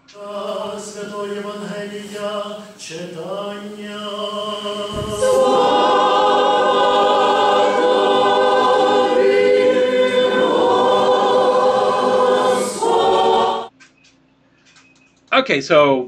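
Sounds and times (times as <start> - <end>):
choir singing chant: 0.0 - 13.7.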